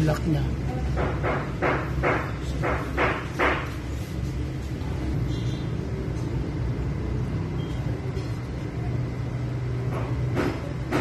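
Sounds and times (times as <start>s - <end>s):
low mechanical rumble: 3.7s - 11.0s.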